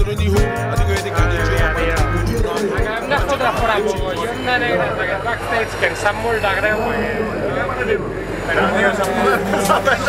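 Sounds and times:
people talking: 0:00.6 - 0:10.0.

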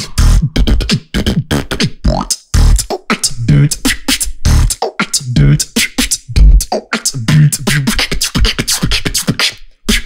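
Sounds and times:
vocal beatbox: 0:00.0 - 0:10.0.

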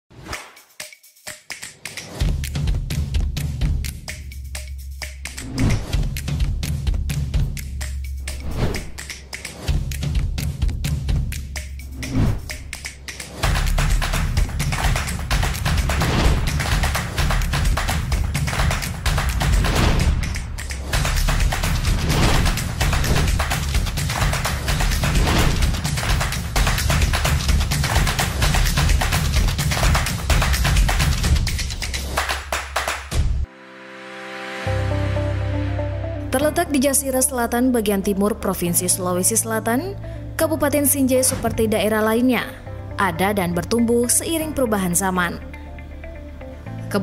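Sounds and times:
music with fast percussive beat: 0:00.2 - 0:33.5.

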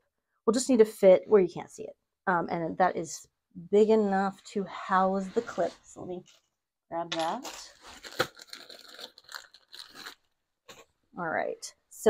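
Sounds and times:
plastic bag crinkling: 0:07.2 - 0:10.8.

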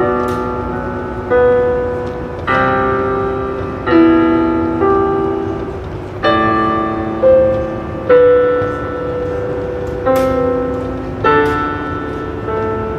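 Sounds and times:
piano playing slow chords: 0:00.0 - 0:12.9.

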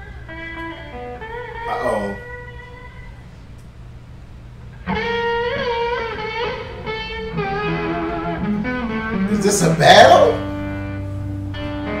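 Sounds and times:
electric guitar bending notes: 0:00.0 - 0:03.2, 0:04.8 - 0:12.0
country band music: 0:07.5 - 0:12.0.

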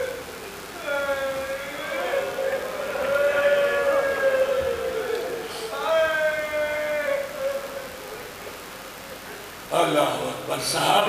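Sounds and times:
amplified voice chanting lament: 0:00.8 - 0:07.9.

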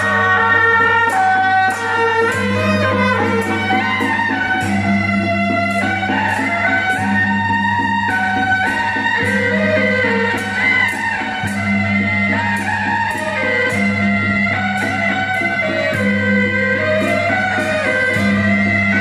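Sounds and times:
cymbal strokes: 0:00.0 - 0:19.0
shawm playing held melody: 0:00.0 - 0:19.0.

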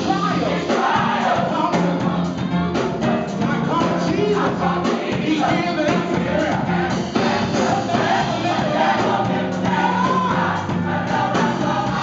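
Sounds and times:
gospel choir singing: 0:00.0 - 0:12.0.

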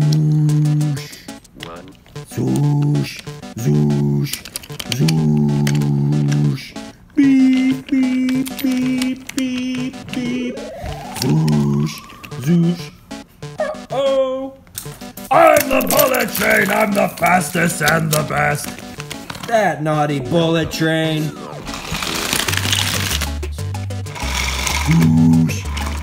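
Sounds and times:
voice: 0:00.0 - 0:13.0, 0:13.6 - 0:14.6, 0:15.3 - 0:18.8, 0:19.4 - 0:21.7
held tone: 0:05.4 - 0:16.2
short beeps: 0:10.5 - 0:14.3
long rising whistle: 0:10.6 - 0:12.4.

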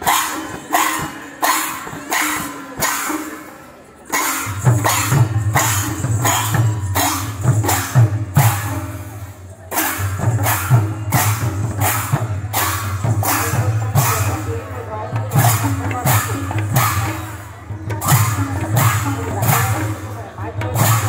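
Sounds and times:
brass hand cymbals clashing: 0:00.0 - 0:21.0.

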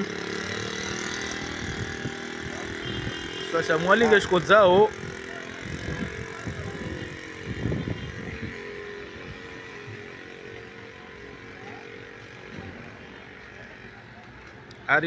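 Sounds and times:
vehicle engine running: 0:00.0 - 0:14.8
faint outdoor background noise: 0:00.0 - 0:15.0.

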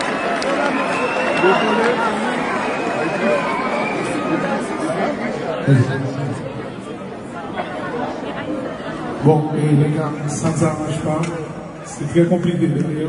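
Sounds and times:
audience chattering: 0:00.0 - 0:13.0
man's voice: 0:09.2 - 0:13.0.

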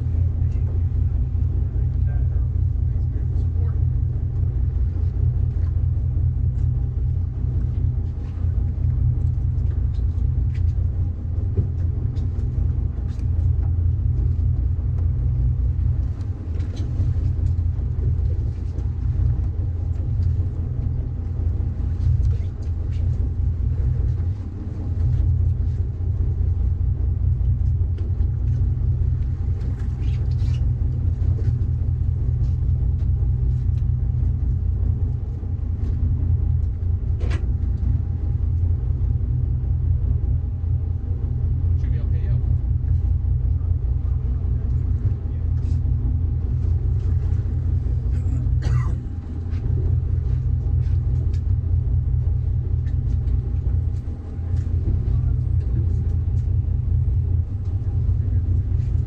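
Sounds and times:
boat engine rumble: 0:00.0 - 0:59.0.

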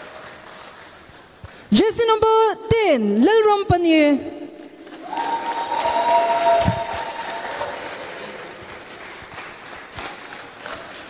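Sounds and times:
applause: 0:00.0 - 0:01.2, 0:04.8 - 0:11.0.

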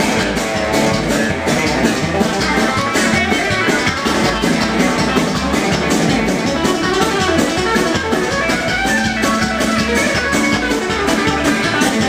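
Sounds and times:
country band playing: 0:00.0 - 0:12.0.

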